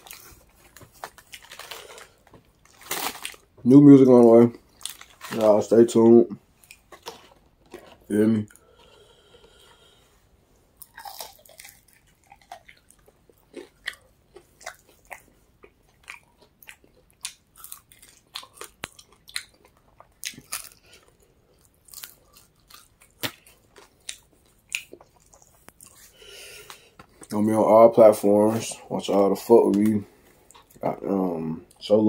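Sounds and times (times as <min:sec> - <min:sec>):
person chewing crunchy food: 0:00.0 - 0:03.6, 0:04.6 - 0:05.5, 0:10.7 - 0:27.4, 0:29.8 - 0:31.0.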